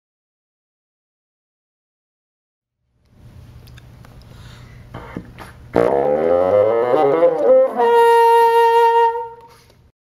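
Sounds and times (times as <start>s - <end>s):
bassoon playing: 5.7s - 9.6s.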